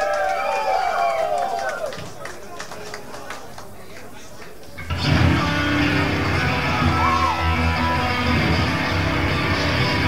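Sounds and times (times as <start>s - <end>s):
bass guitar: 4.8s - 10.0s
drums: 4.8s - 10.0s
distorted electric guitar: 4.9s - 10.0s.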